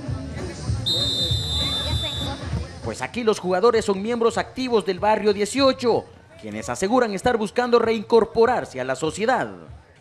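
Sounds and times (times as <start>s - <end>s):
faint crowd voices: 0.0s - 10.0s
referee's whistle long note: 0.8s - 2.4s.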